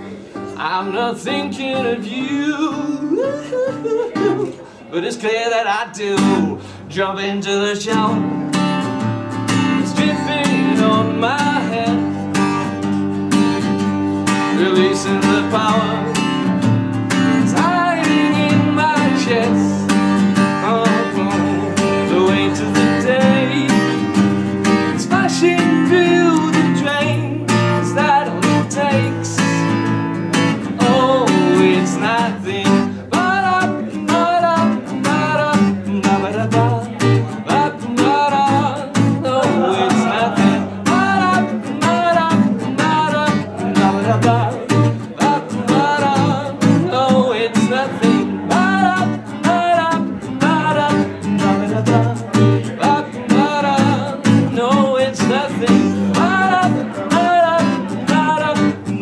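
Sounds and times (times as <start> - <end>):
acoustic guitar strumming: 0.0 - 59.0
man singing: 0.0 - 59.0.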